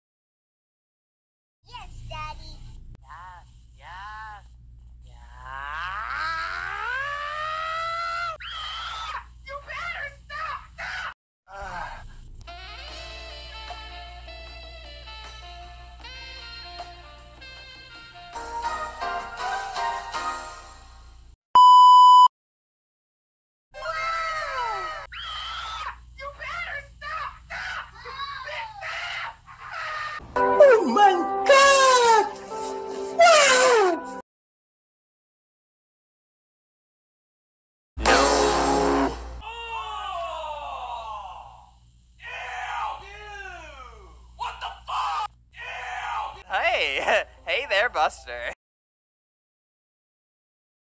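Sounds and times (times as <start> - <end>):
music with held notes: 32.3 - 33.2.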